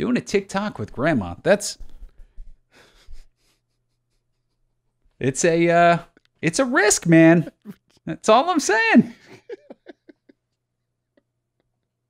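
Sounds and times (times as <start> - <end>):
faint breath: 1.9 - 3.6.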